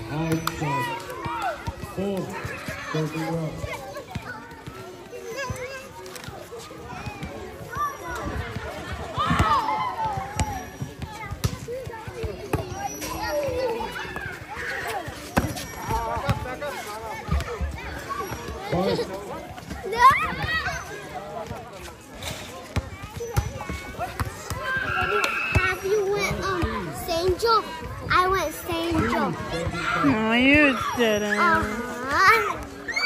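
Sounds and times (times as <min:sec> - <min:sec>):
chatter and calls of people: 0:00.0 - 0:33.0.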